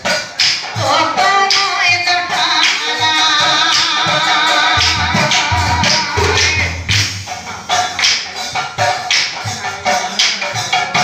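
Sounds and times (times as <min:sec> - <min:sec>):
drum beat of sharp strikes: 0:00.0 - 0:11.0
voices singing: 0:00.8 - 0:07.9.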